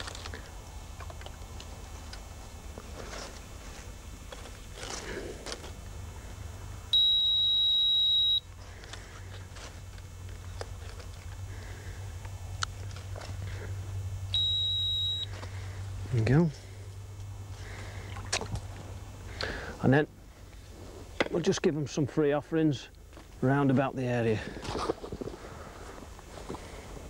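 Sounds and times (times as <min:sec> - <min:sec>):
electronic alarm tones: 0:06.9 - 0:08.5, 0:14.3 - 0:15.4.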